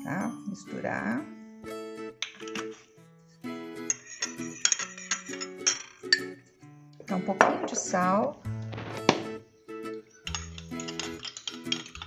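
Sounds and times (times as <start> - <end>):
spoon clinking against glass bowl: 2.2 - 2.9, 3.8 - 6.4, 10.1 - 12.0.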